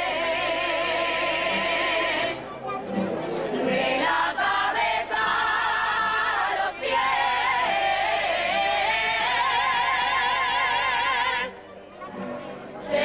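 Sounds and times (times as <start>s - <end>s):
singing with vibrato: 0.0s - 2.5s, 3.4s - 11.7s, 12.8s - 13.0s.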